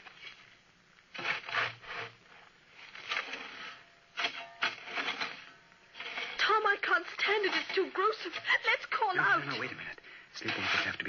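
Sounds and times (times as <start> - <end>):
faint steady whine: 0.0 - 11.0
spade scraping and shovelling earth: 0.0 - 11.0.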